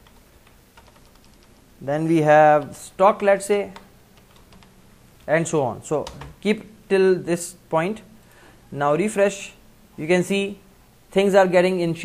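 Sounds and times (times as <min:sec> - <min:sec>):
computer keyboard keystrokes: 0:00.0 - 0:01.5, 0:03.7 - 0:04.7, 0:06.0 - 0:06.4.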